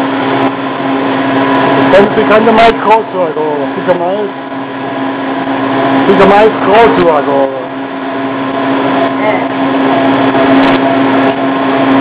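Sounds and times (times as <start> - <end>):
ice cream machine humming: 0.0 - 12.0.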